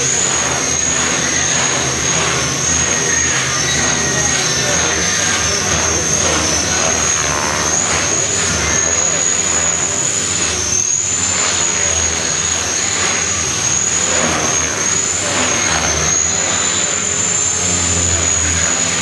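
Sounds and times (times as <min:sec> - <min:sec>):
model helicopter motor whine: 0:00.0 - 0:19.0
whirring rotor: 0:00.0 - 0:19.0.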